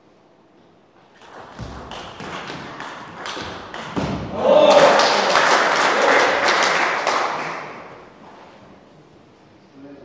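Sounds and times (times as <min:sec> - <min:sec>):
hand clapping: 0:04.7 - 0:07.9.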